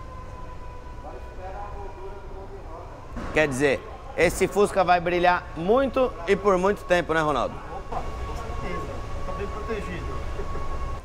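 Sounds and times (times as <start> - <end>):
faint distant voices: 0.0 - 10.9.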